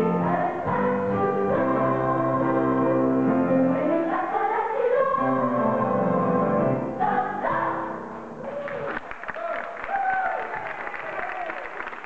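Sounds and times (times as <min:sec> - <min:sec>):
children's choir singing: 0:00.0 - 0:08.4.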